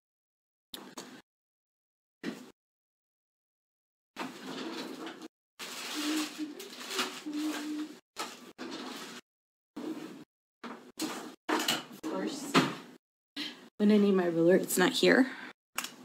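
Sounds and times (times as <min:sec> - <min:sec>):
faint indistinct voice: 0:07.2 - 0:08.0.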